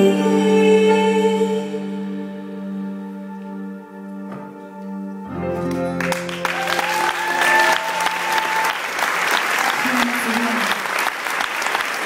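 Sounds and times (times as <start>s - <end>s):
audience applause: 5.6s - 12.0s
voices cheering: 6.3s - 11.8s.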